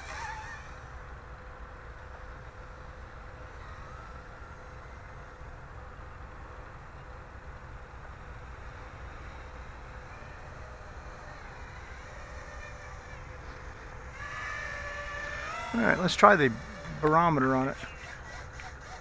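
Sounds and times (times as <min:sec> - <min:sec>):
quadcopter motors whining: 0:00.0 - 0:19.0.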